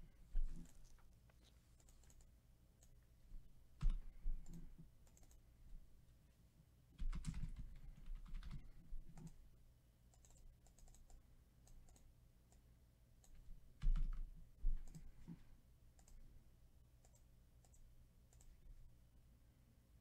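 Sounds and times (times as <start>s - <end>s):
keyboard keystrokes: 7.0s - 9.4s
mouse clicks: 17.0s - 18.6s.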